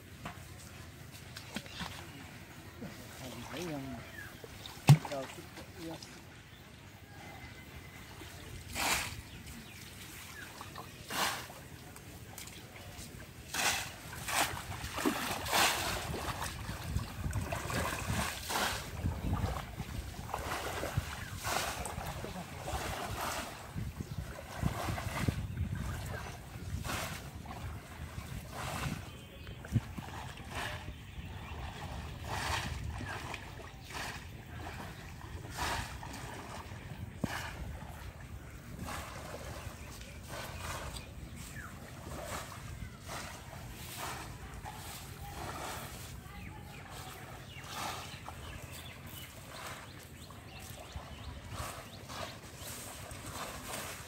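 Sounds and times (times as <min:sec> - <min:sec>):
water sloshing around wading legs: 0:00.0 - 0:54.0
wind rumble on microphone: 0:15.7 - 0:44.2.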